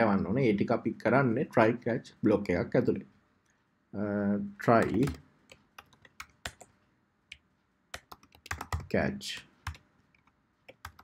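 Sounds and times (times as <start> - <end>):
keyboard keys clicking: 4.8 - 6.7, 7.3 - 8.9, 9.6 - 11.0.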